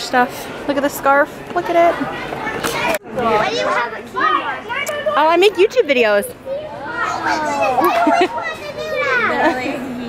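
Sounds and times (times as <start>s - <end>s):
child's voice: 6.4s - 9.8s
people laughing: 7.6s - 10.0s.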